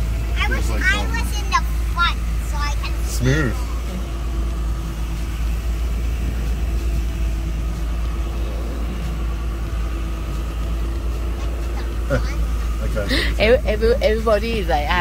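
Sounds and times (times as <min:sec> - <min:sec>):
ferry engine rumble: 0:00.0 - 0:15.0.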